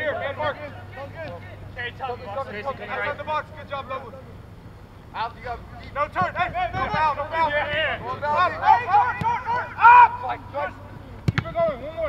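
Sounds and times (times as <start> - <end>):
men shouting outdoors: 0.0 - 12.0
man loud call: 6.3 - 10.8.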